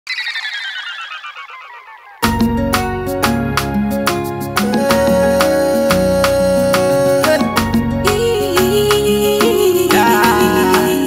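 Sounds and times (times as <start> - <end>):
descending bell-like chime run: 0.1 - 2.3.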